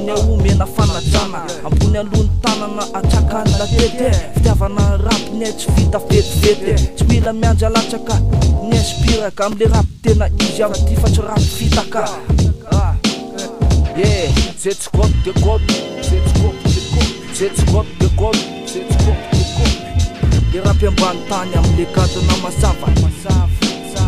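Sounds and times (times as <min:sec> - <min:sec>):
rapping over a drum beat: 0:00.0 - 0:24.0.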